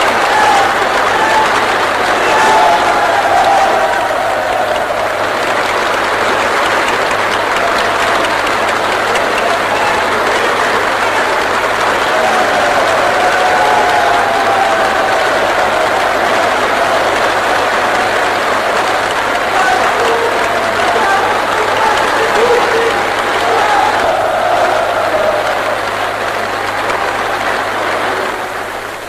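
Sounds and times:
voices calling out: 0.0s - 28.9s
audience applauding: 0.0s - 29.0s.

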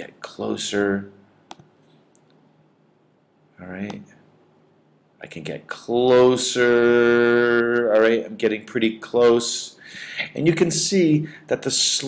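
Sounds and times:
faint low hum: 0.0s - 12.0s
computer mouse click: 1.5s - 2.4s.

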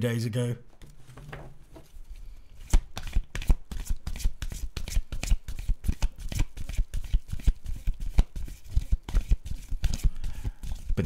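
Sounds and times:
cards being shuffled: 0.8s - 11.0s.

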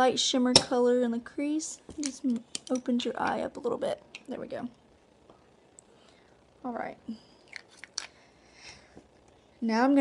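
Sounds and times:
small objects clicking and tapping: 1.9s - 3.4s.

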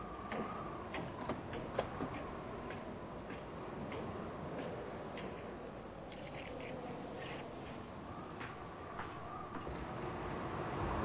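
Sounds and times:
footsteps: 0.1s - 9.7s.

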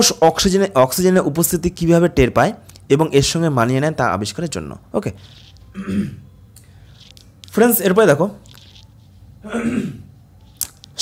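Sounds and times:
man speaking: 0.0s - 5.3s, 7.5s - 8.4s
man clearing throat: 5.7s - 6.3s, 9.4s - 10.1s.

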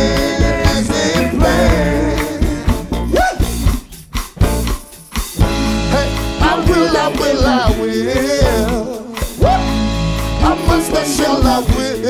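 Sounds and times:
drum kit: 0.0s - 12.0s
electric bass guitar: 0.0s - 12.0s.

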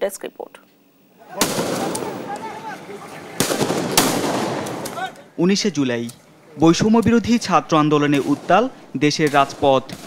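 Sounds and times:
gunshots: 1.3s - 2.3s, 3.4s - 5.0s, 7.2s - 10.0s
faint gunshot cracks: 1.4s - 2.1s, 3.4s - 5.0s.

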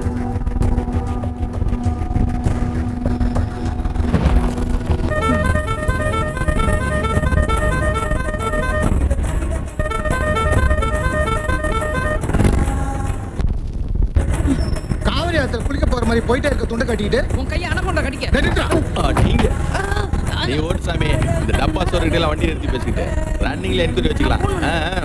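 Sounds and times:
vehicle engine rumbling: 0.0s - 25.0s
two-pitch horn beeps: 5.0s - 12.5s.

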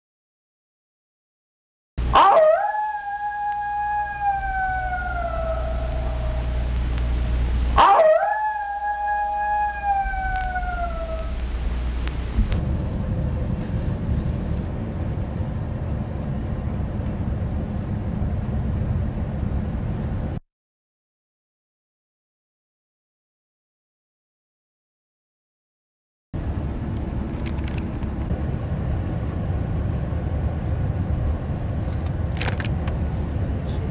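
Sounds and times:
steady low rumble: 2.0s - 20.4s, 26.4s - 33.9s
dog howling: 2.1s - 6.7s, 7.8s - 11.4s.

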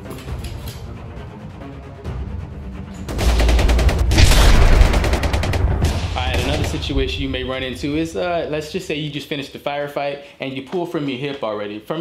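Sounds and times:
rapid gunfire: 3.1s - 7.5s
man's voice: 6.2s - 12.0s.

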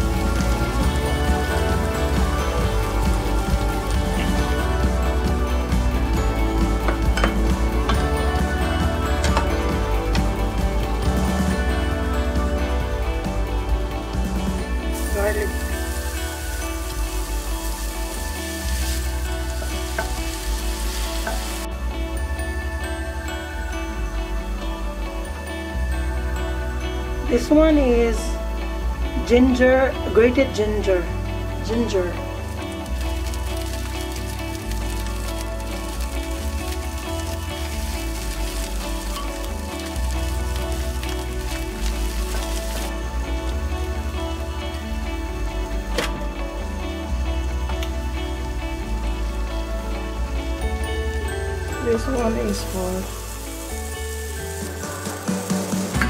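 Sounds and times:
hot oil sizzling in a pan: 0.0s - 12.8s, 13.4s - 22.6s, 31.7s - 45.8s, 49.9s - 56.0s
background music with bass line: 0.0s - 56.0s.

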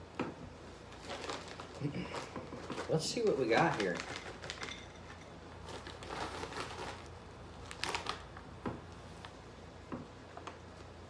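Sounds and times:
plastic snack bag crinkling: 0.8s - 8.6s.

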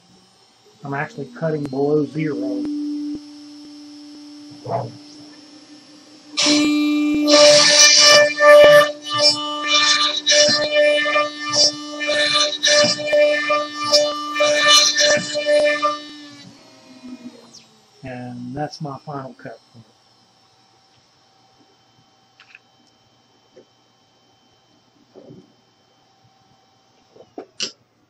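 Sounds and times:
router spindle humming: 0.0s - 27.8s
router bit tearing into wood: 0.8s - 17.7s.

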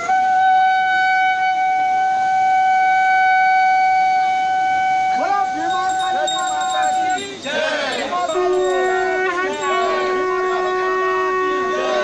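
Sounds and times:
horn blowing long steady note: 0.0s - 5.7s, 8.3s - 12.0s
voices calling out: 5.6s - 12.0s.

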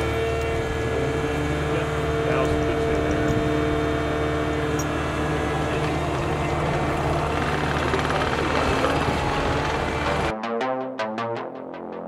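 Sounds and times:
diesel engine running: 0.0s - 10.3s
tracked machine driving off: 0.0s - 10.3s.

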